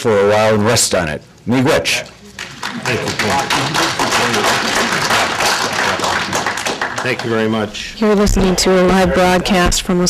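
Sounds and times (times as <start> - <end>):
audience applauding: 2.4 - 7.7.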